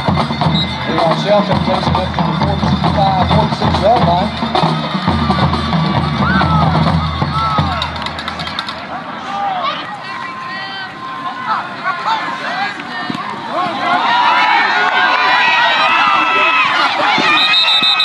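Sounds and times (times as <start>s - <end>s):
voices: 0.0s - 18.0s.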